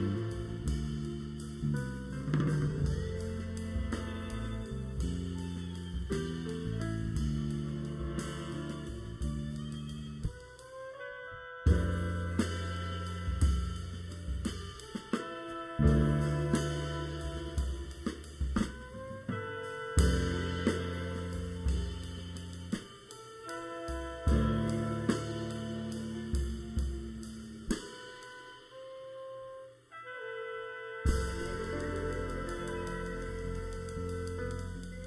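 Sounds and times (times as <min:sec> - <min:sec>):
live jazz ensemble: 0:00.0 - 0:35.0.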